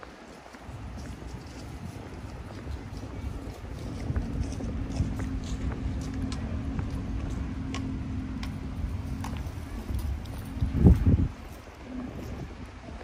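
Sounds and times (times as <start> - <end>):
footsteps on paved path: 0.0 - 13.0
low city rumble: 0.0 - 13.0
steady low hum: 0.0 - 13.0.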